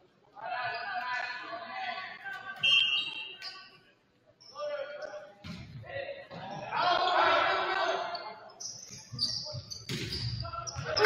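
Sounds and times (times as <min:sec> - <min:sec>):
referee's whistle blast: 0:02.6 - 0:03.6.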